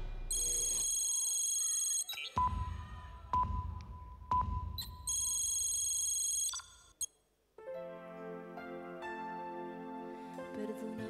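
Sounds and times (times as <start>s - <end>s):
sharp beep: 0.3s - 2.8s, 3.4s - 6.9s.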